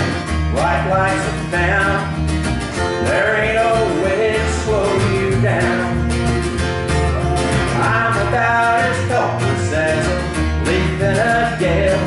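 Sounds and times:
man singing: 0.0 - 2.2, 2.9 - 6.2, 7.0 - 12.0
plucked double bass: 0.0 - 12.0
strummed acoustic guitar: 0.0 - 12.0.

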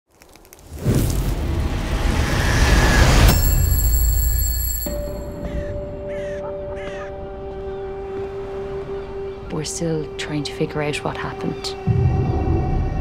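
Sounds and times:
low musical drone: 4.8 - 13.0
crows cawing: 5.4 - 8.0.

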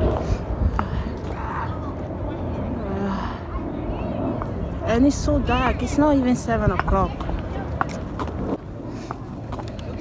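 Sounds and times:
faint voices: 0.0 - 10.0
low city rumble: 0.0 - 10.0.

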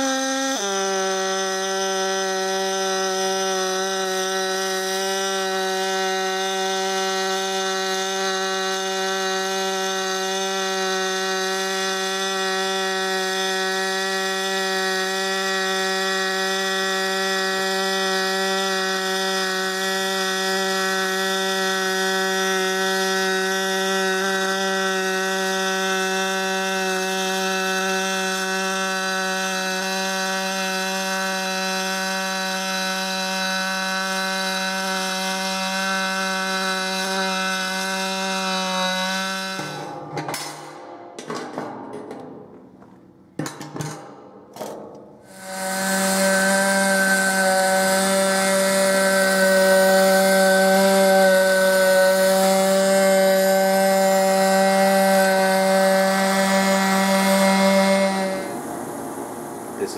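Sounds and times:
arc welding buzz and crackle: 0.0 - 41.1, 45.2 - 59.9.

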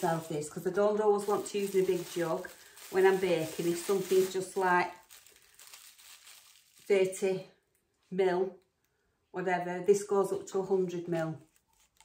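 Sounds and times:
plastic bag crinkling: 0.0 - 7.4, 11.4 - 12.0.

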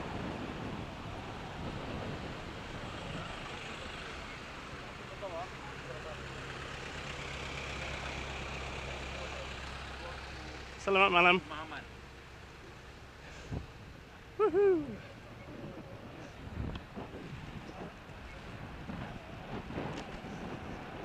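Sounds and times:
low engine hum: 0.0 - 21.0
road traffic noise: 0.0 - 21.0.

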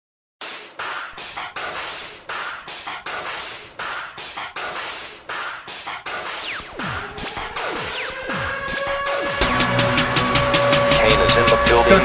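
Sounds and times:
drum machine hits: 0.4 - 12.0.

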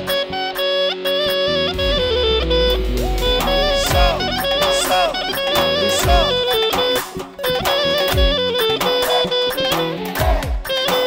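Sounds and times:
clarinet runs: 0.0 - 11.0
live band dance music: 1.3 - 11.0
deep drum hits: 1.8 - 6.7.

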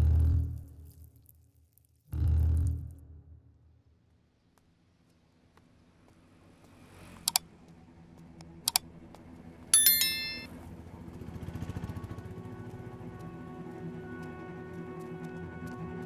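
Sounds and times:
bright metallic chime strike: 9.8 - 10.5
held tones: 9.8 - 10.5.

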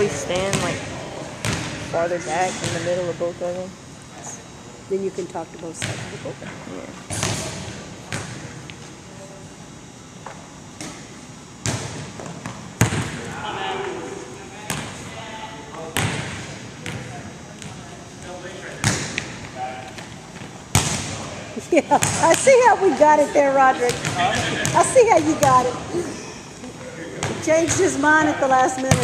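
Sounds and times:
faint voices: 13.2 - 18.8.

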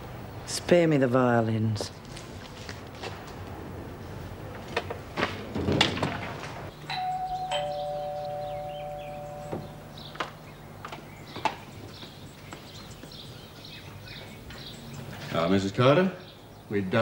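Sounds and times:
china clinking: 6.8 - 10.1
two-tone doorbell chime: 6.8 - 10.2.

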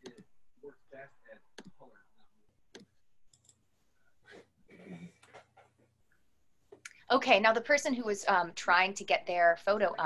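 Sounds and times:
faint voice: 4.7 - 5.4.

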